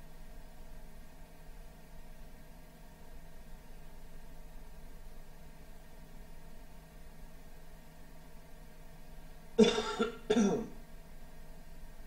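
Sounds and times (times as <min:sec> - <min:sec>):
man coughing: 0:09.6 - 0:10.7.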